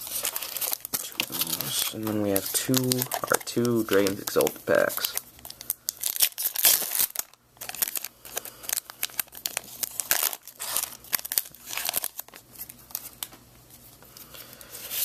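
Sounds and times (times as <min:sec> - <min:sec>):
foil wrapper tearing and crinkling: 0:00.0 - 0:13.3.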